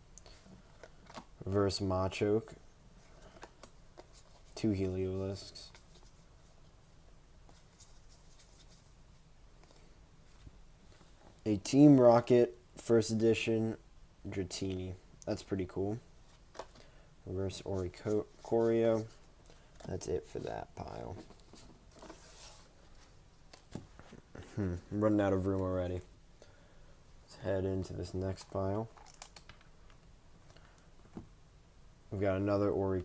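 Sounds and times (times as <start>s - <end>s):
trading cards rustling: 17.5s - 26.0s, 27.4s - 30.9s.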